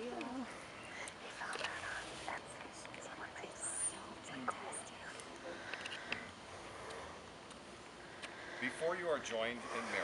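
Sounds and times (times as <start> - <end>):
murmured voices and whispering: 0.0 - 10.0.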